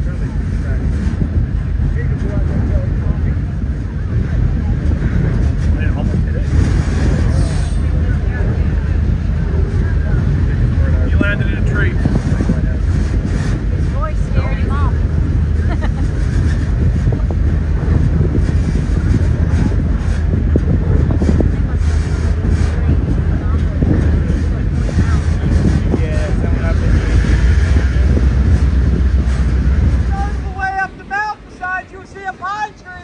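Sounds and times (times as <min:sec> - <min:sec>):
train wheels rumbling on track: 0:00.0 - 0:33.0.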